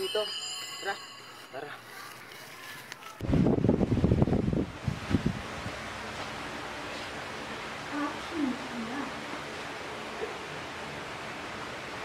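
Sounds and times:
wind buffeting microphone: 3.2 - 5.8.

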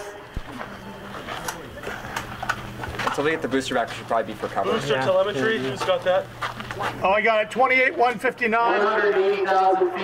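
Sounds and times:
faint murmur of voices: 0.0 - 7.2.

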